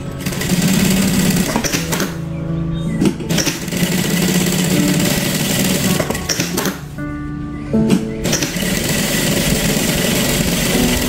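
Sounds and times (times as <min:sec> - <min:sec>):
sewing machine stitching fabric: 0:00.2 - 0:02.2, 0:03.3 - 0:06.8, 0:08.2 - 0:11.0.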